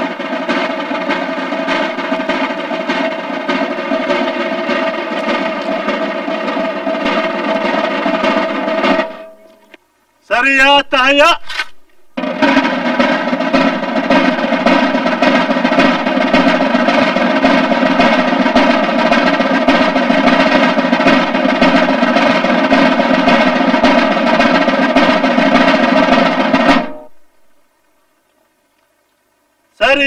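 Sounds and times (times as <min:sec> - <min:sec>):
snare drum roll: 0:00.0 - 0:09.8, 0:10.7 - 0:27.7
held tone: 0:04.9 - 0:09.8.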